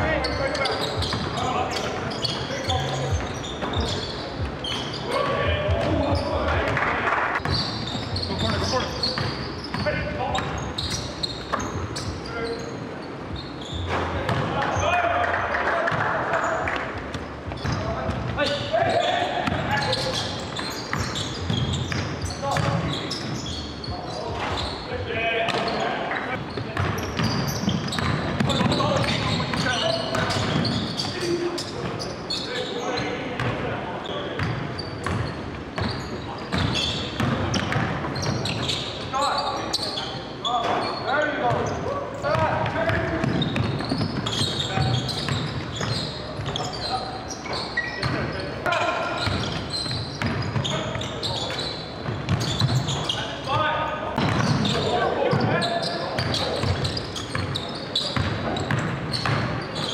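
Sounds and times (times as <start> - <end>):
players' voices and shouts: 14.1 - 16.9, 17.6 - 21.5, 52.4 - 57.0.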